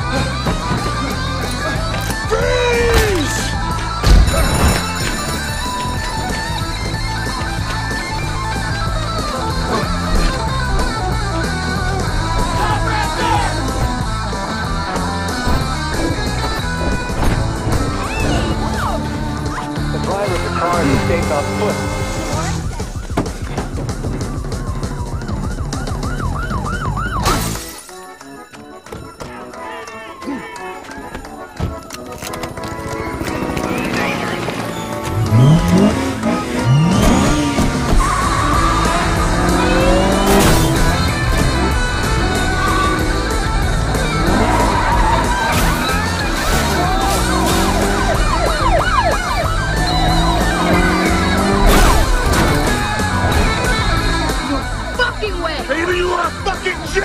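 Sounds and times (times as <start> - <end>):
music with driving beat: 0.0 - 27.3, 32.8 - 57.0
car noise: 0.0 - 27.6, 31.0 - 57.0
police siren yelping: 21.4 - 27.5, 34.6 - 56.9.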